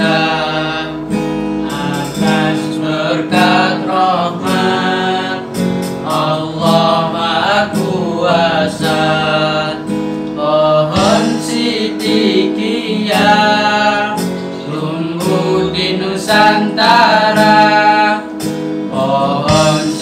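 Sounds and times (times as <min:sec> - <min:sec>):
strummed acoustic guitar: 0:00.0 - 0:20.0
young men singing together: 0:00.0 - 0:20.0.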